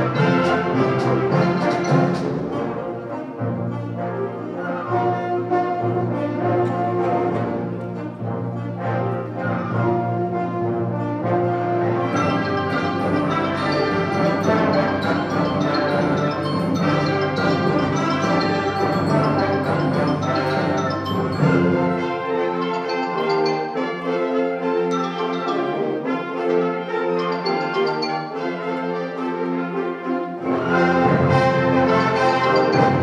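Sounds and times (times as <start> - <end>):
concert wind band playing: 0.0 - 33.0.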